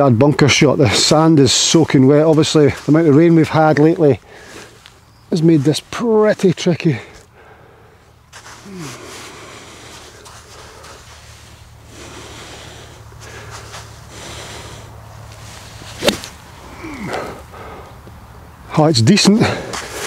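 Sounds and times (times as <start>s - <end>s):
golf club thud in sand: 16.0s - 16.4s.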